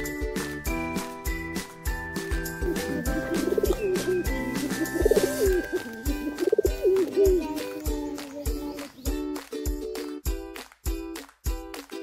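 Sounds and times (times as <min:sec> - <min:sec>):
background music with steady beat: 0:00.0 - 0:12.0
pigeons cooing: 0:02.7 - 0:07.5.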